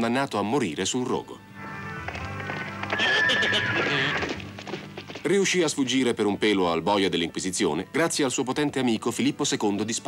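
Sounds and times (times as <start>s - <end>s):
music: 0.0s - 10.0s
cartoon horse whinnying: 2.8s - 4.4s.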